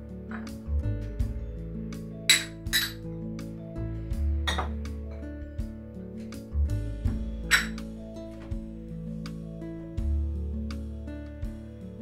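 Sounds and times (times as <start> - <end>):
background music: 0.0 - 12.0
dishes clinking: 4.5 - 4.8, 7.5 - 7.8.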